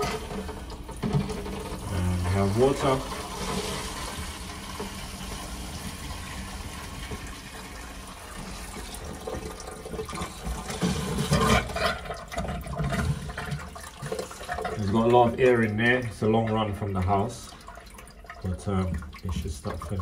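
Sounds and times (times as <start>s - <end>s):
toilet cistern filling with water: 0.0s - 20.0s
water spluttering in pipe: 0.0s - 20.0s.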